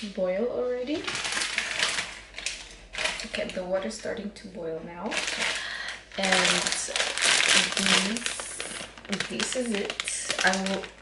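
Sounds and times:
plastic packet crinkling: 0.9 - 3.7, 5.0 - 11.0.

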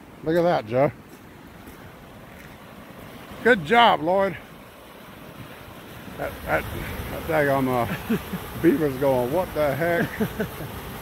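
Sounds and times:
water rushing out of pipe: 1.9 - 11.0.

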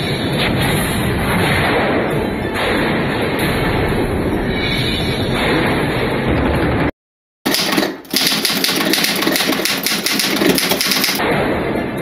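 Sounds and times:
rapid clattering clicks: 7.5 - 11.2.

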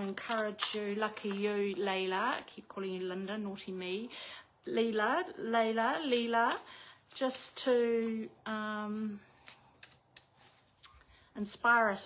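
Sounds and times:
cards being shuffled: 0.0 - 1.9, 5.7 - 11.1.

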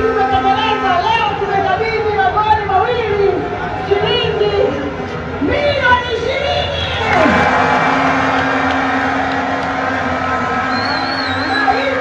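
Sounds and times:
crowd clapping: 7.0 - 12.0.

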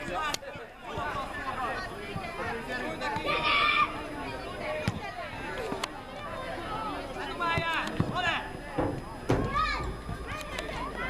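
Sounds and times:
children shouting: 3.0 - 4.4, 9.3 - 11.0
short thump: 7.6 - 10.2.

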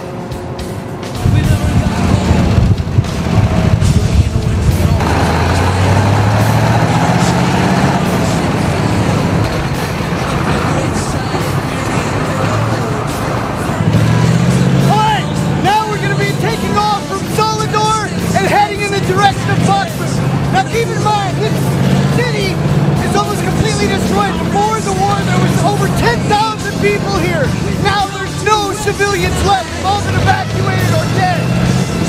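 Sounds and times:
music: 0.0 - 32.0
vehicle engine revving: 0.0 - 32.0.

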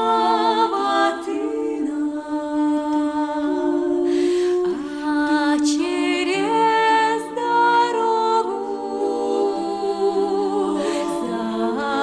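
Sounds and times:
women singing a cappella: 0.0 - 12.0.

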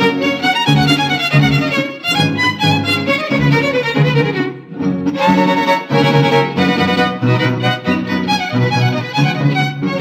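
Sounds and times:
violins playing melody: 0.0 - 10.0.

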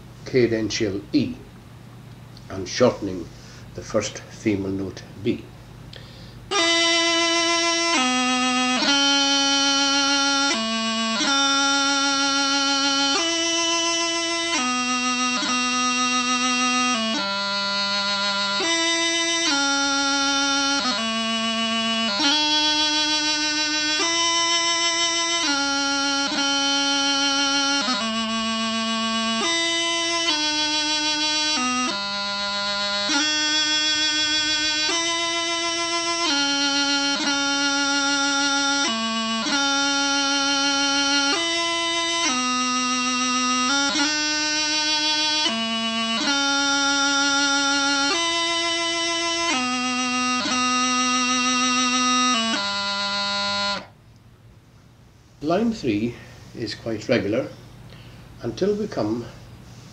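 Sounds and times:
bagpipe practice chanter playing: 2.4 - 54.0.

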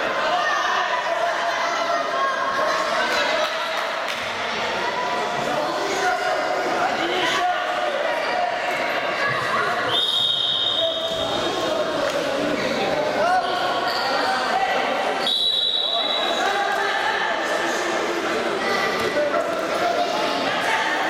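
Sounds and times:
spectators' voices echoing: 0.0 - 21.0
referee's whistle blasts: 9.9 - 11.2, 15.2 - 16.4.

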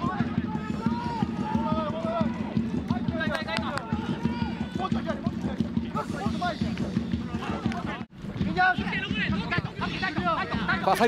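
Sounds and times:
rhythmic thuds from stands: 0.0 - 11.0.

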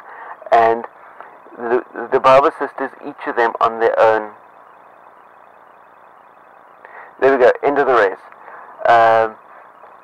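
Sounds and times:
microphone hiss: 0.0 - 10.0
high-pitched pulsing tone: 0.4 - 10.0.

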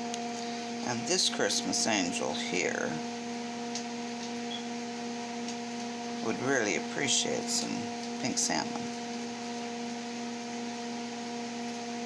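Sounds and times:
electrical hum with pitched tones: 0.0 - 12.0.

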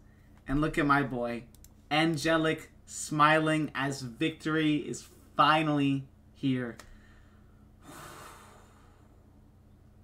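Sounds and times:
man breathing softly: 6.8 - 9.4.

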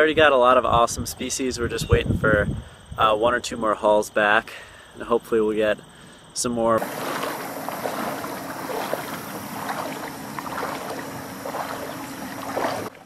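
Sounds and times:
faint steady hum: 4.5 - 13.0
river water splashing and gurgling: 6.8 - 13.0.

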